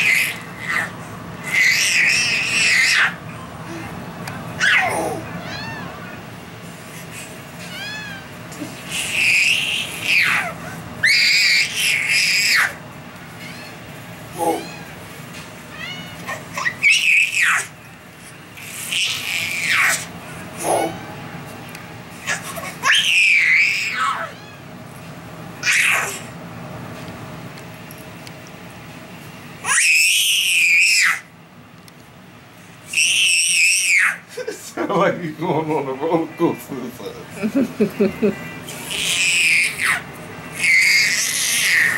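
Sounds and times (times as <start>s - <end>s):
baby squealing with delight: 0.0s - 3.2s, 4.6s - 6.0s, 8.9s - 12.8s, 15.8s - 17.7s, 18.9s - 20.1s, 22.3s - 24.6s, 25.6s - 26.3s, 29.6s - 31.3s, 32.9s - 34.3s, 40.6s - 41.9s.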